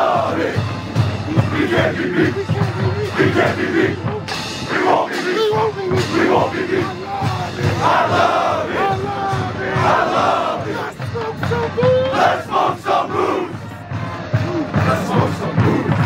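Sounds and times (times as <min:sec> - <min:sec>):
background music: 0:00.0 - 0:16.0
team shouting together: 0:01.4 - 0:13.6.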